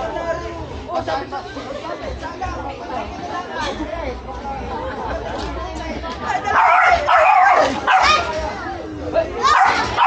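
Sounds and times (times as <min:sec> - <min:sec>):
people chatting: 0:00.0 - 0:10.0
small dog yapping: 0:06.6 - 0:08.3.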